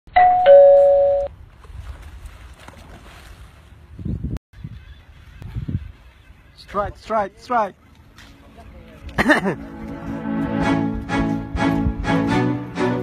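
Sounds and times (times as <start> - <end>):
low rumble: 9.5 - 12.3.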